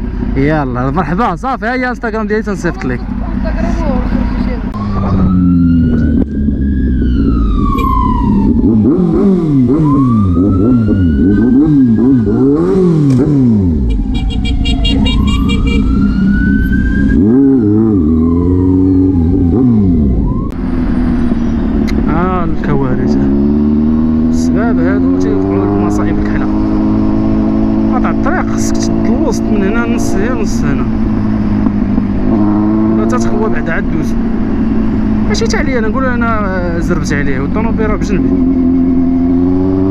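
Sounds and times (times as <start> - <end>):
motorcycle engine revving: 0.0 - 39.9
high wailing tone: 4.7 - 8.9, 13.8 - 20.6.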